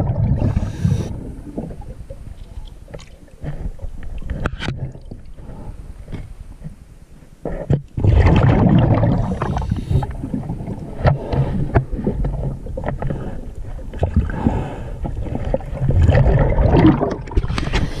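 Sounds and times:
underwater regulator bubbles: 0:00.0 - 0:05.6, 0:07.5 - 0:18.0.

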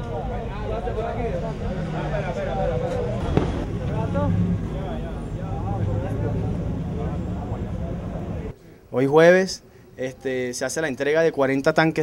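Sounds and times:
people talking: 0:00.0 - 0:12.0
engine idling hum: 0:00.5 - 0:08.5.

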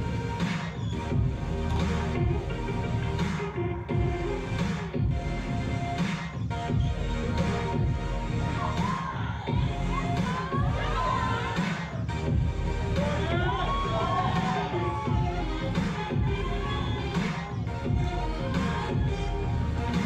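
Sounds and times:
audience shouting and cheering: 0:00.0 - 0:20.0
electronic music with heavy beat: 0:00.0 - 0:20.0.

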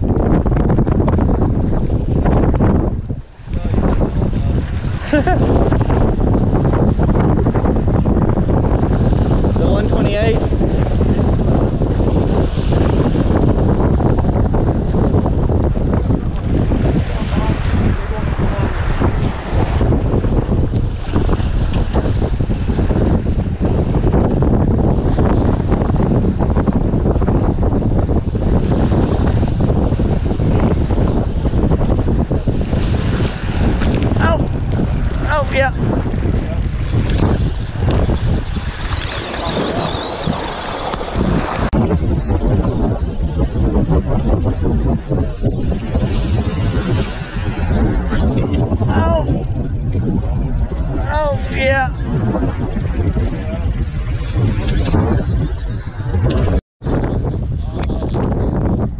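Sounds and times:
waves washing against rocks: 0:00.0 - 0:43.7
wind buffeting microphone: 0:00.0 - 0:58.9.

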